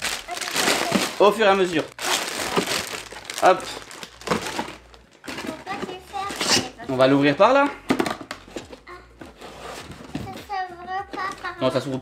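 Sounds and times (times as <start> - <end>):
foil packets crinkling: 0.0 - 6.7.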